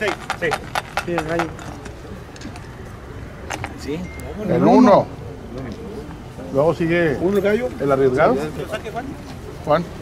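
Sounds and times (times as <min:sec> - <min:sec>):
faint distant chatter: 0:00.0 - 0:10.0.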